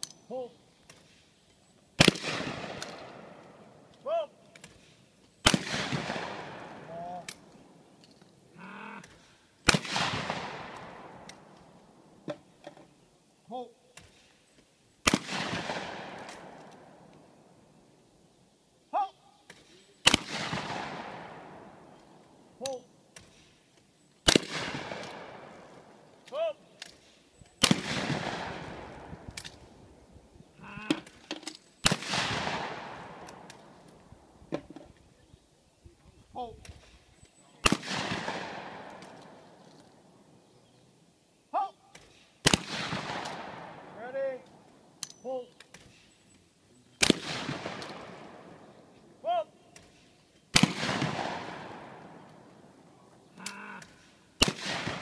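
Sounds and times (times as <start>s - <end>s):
shotgun shots echoing: 2.0s - 3.9s, 4.6s - 7.8s, 9.0s - 12.5s, 15.0s - 17.6s, 19.5s - 23.5s, 24.2s - 29.9s, 30.9s - 34.4s, 37.6s - 40.2s, 41.9s - 45.0s, 47.0s - 55.0s
person calling pull: 22.6s - 22.9s, 26.2s - 26.6s, 30.6s - 31.5s, 41.5s - 42.1s, 53.3s - 54.0s.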